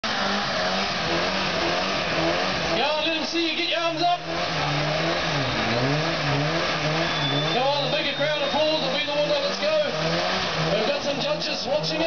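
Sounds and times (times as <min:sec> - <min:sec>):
car engine revving: 0:00.0 - 0:12.0
tyres screeching on tarmac: 0:00.0 - 0:12.0.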